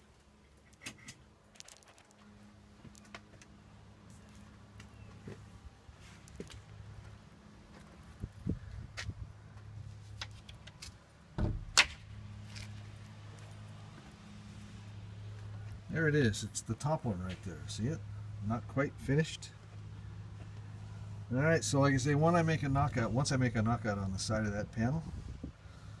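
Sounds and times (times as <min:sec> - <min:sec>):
footsteps: 0:01.5 - 0:10.5.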